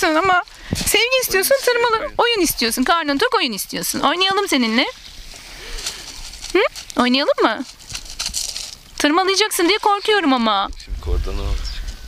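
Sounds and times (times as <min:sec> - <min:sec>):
pebbles clicking and rattling: 0:05.8 - 0:09.0.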